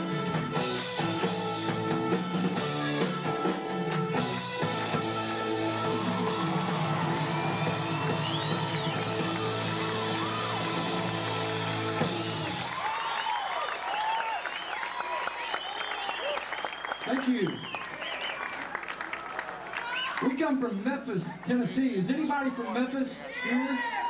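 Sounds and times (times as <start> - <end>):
live rock band playing: 0.0 - 12.8
crowd cheering and applauding: 0.0 - 20.4, 23.4 - 24.0.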